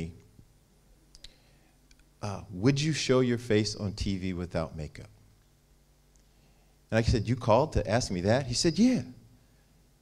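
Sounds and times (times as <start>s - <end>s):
faint short clicks: 1.1s - 2.1s
man speaking over microphone: 2.2s - 5.2s, 6.9s - 9.2s.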